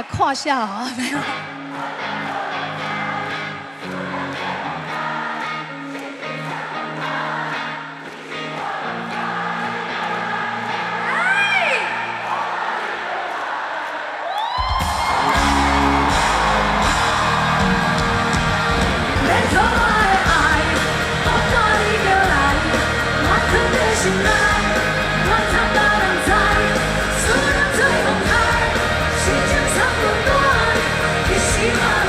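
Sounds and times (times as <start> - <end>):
live pop music: 0.0 - 12.6, 14.6 - 32.0
crowd voices: 0.8 - 32.0
drums and heavy bass: 14.7 - 32.0
person singing: 17.6 - 32.0.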